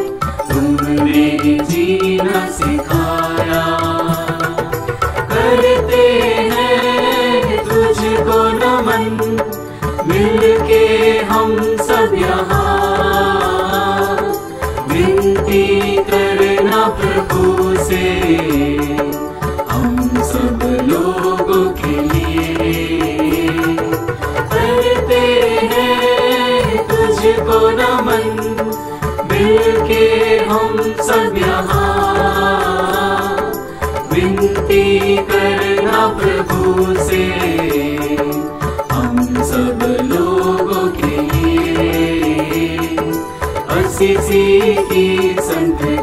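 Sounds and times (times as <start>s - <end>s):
devotional hymn music: 0.0s - 46.0s.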